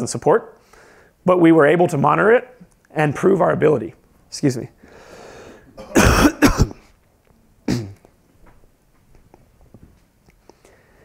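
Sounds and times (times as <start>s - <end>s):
man coughing: 5.8s - 6.9s, 7.7s - 8.0s.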